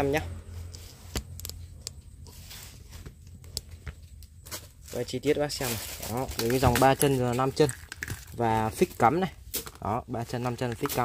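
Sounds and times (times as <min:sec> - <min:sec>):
plastic plugs clicking and tapping: 0:01.1 - 0:02.0, 0:03.4 - 0:04.3, 0:06.4 - 0:08.4, 0:10.4 - 0:11.0.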